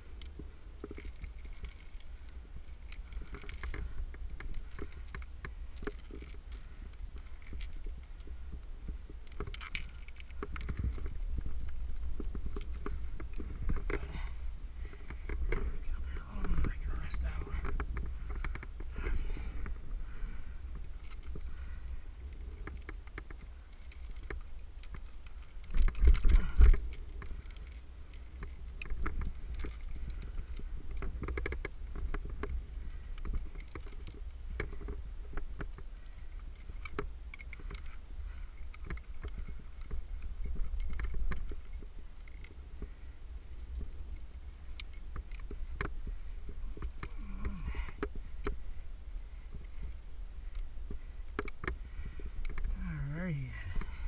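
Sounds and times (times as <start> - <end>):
metal climbing gear clinking: 0.0 - 54.0
wind rumble on microphone: 0.0 - 54.0.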